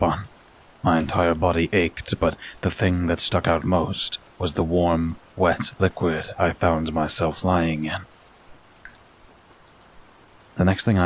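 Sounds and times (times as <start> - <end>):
faint steady rain: 0.0 - 11.0
soft water drips: 0.0 - 11.0.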